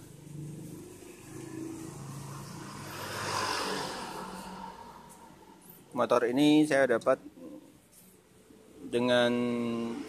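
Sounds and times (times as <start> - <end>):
vehicle passing: 0.0 - 6.2.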